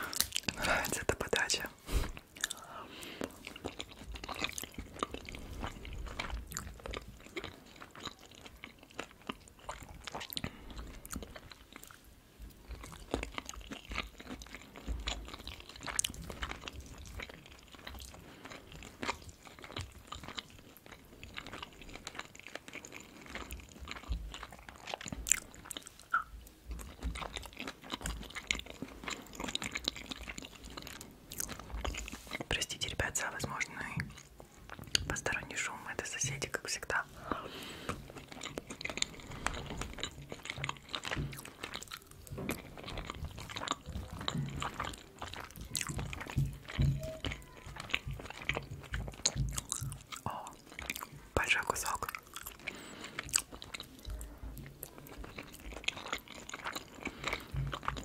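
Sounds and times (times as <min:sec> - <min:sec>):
chewing and biting food: 0:00.0 - 0:35.7, 0:36.3 - 0:58.0.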